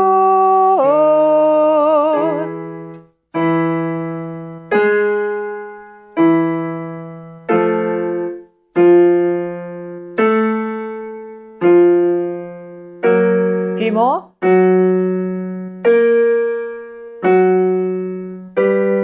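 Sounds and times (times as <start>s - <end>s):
keyboard piano chords: 0.0s - 19.0s.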